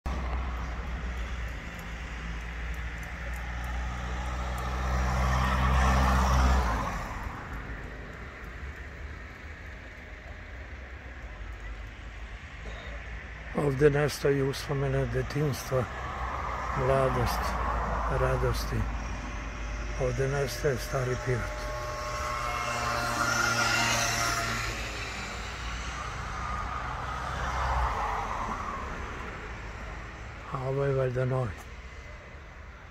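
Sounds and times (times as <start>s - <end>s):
motor vehicle passing by: 0.1s - 32.9s.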